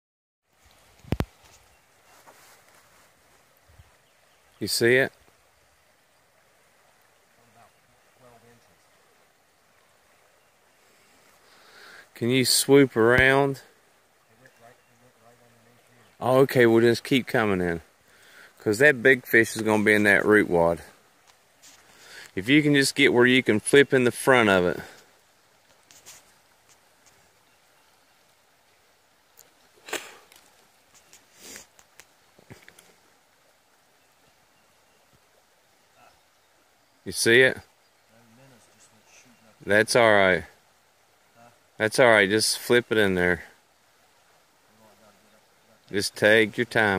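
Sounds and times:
faint outdoor ambience: 0.4s - 46.9s
faint voice sounds: 35.9s - 36.2s, 38.1s - 39.6s, 41.3s - 41.6s.

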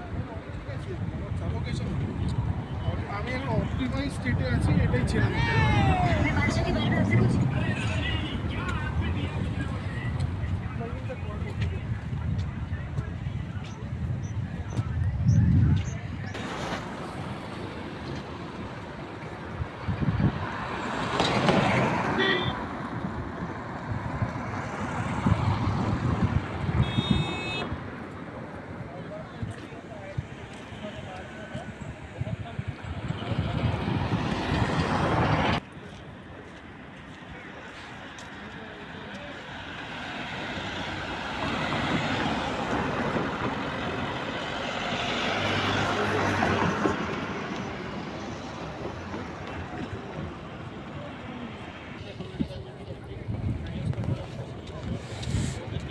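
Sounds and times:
cars passing: 0.0s - 55.9s
car horn toot: 22.2s - 22.6s, 26.8s - 27.8s
long car horn honk: 26.8s - 27.7s.

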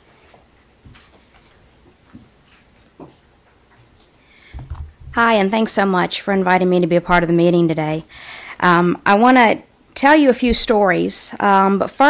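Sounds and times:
footsteps: 0.3s - 5.3s
soft knocks and clicks: 4.6s - 5.2s.

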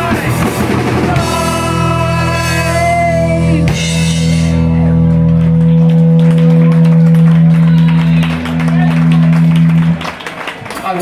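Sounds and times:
electric guitar and bass chord: 0.0s - 10.0s
people clapping: 4.9s - 11.0s.

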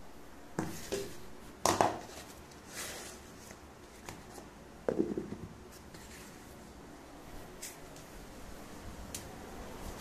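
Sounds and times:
soft rubbing and rustling: 2.0s - 4.6s, 5.6s - 8.3s
knock on kitchen counter: 4.9s - 5.5s.

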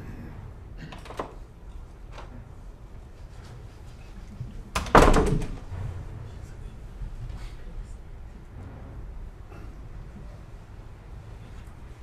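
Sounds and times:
loud thud: 4.8s - 6.6s.

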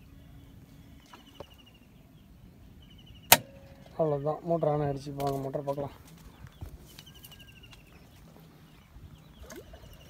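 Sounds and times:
distant bird trill: 0.0s - 5.2s, 6.3s - 10.0s.

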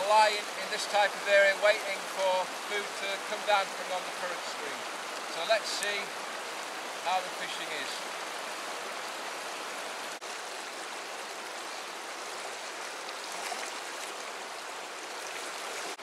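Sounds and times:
river rushing over boulders: 0.0s - 16.0s.

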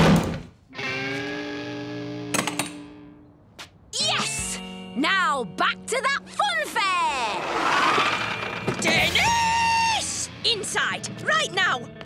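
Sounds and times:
falling pitched slide: 7.1s - 9.5s.

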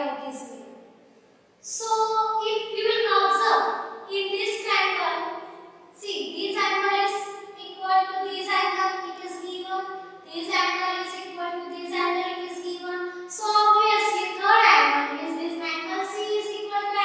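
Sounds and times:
girl speaking: 0.0s - 0.7s, 6.0s - 17.0s.

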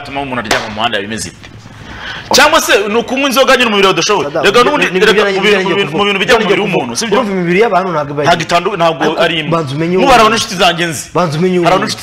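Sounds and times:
man talking: 2.3s - 12.0s.

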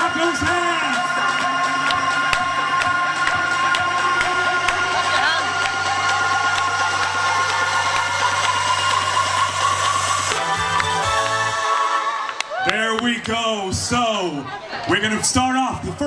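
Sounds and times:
game-show music: 0.0s - 13.8s.

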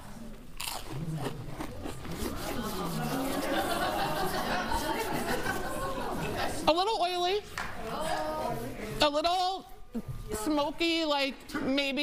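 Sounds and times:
chewing and mouth sounds: 0.0s - 3.4s.

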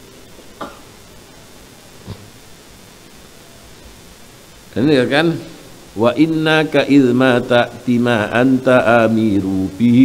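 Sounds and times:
man chanting into a microphone: 6.0s - 10.0s.

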